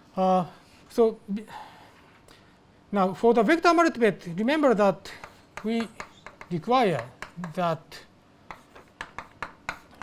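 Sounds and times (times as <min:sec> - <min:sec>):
chalk scratching on chalkboard: 0:08.5 - 0:10.0.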